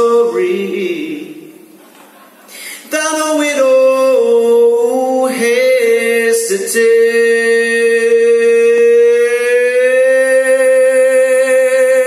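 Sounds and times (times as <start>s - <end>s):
man singing a long note: 0.0s - 1.5s, 2.8s - 12.0s.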